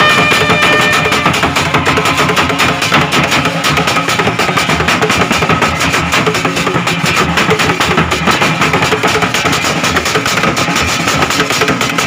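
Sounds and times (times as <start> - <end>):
bass drum: 0.0 - 12.0
hand drums: 0.0 - 12.0.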